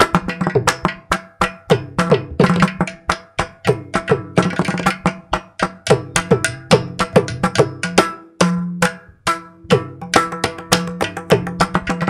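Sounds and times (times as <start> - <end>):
hand drums playing fast rhythm: 0.0 - 12.0.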